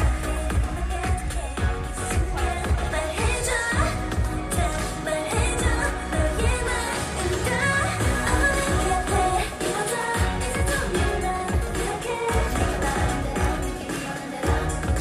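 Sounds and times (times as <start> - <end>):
dance backing track with beat: 0.0 - 15.0
female voices singing: 0.0 - 15.0.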